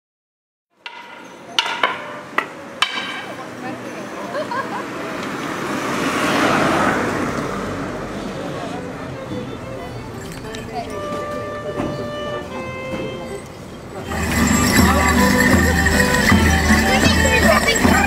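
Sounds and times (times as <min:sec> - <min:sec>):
sharp knocks: 0:00.8 - 0:03.4
people talking: 0:01.2 - 0:05.4, 0:08.1 - 0:18.0
car passing: 0:03.2 - 0:11.7.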